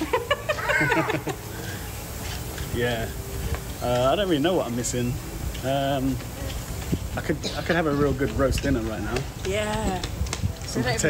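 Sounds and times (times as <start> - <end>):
person laughing: 0.0 - 1.6.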